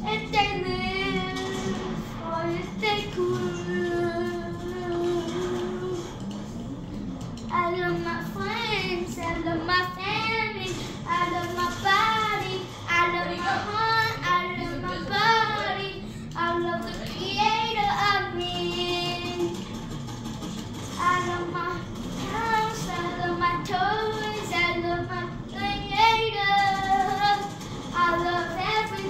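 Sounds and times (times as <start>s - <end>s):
child singing: 0.0s - 6.1s, 7.5s - 19.6s, 21.0s - 29.0s.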